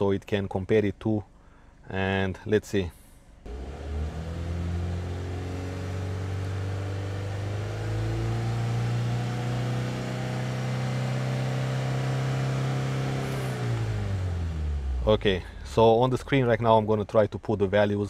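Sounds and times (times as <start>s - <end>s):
car engine running: 3.5s - 16.6s.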